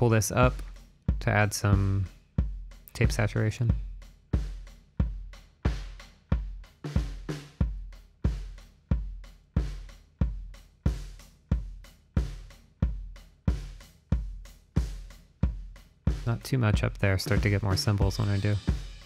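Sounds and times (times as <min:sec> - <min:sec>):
kick drum: 0:02.4 - 0:18.9
snare drum: 0:04.4 - 0:09.0, 0:09.6 - 0:19.0
cymbals: 0:17.2 - 0:19.0.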